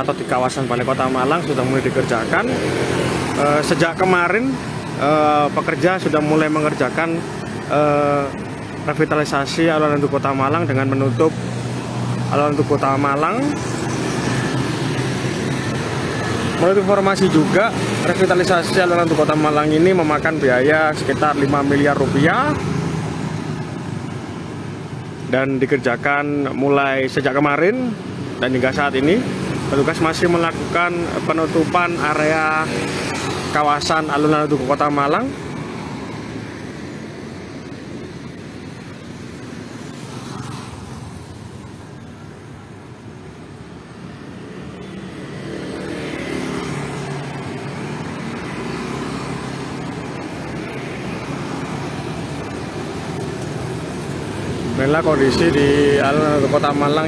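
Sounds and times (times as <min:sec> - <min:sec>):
motor scooters passing: 0:00.0 - 0:57.0.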